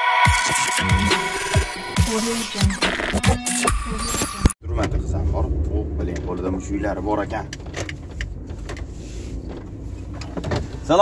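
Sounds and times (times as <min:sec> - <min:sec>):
car engine and road rumble: 0:04.6 - 0:11.0.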